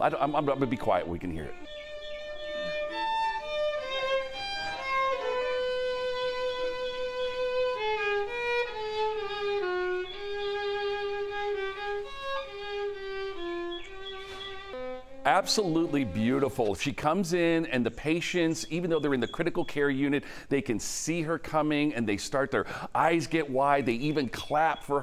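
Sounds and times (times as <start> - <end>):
solo violin slow melody: 0.0 - 16.5.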